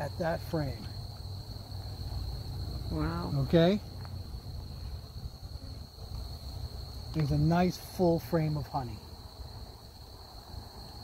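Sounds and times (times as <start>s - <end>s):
cricket trilling: 0.0s - 11.0s.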